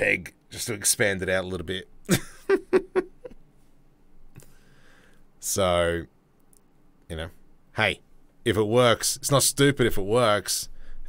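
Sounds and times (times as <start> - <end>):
man laughing: 2.1 - 3.4.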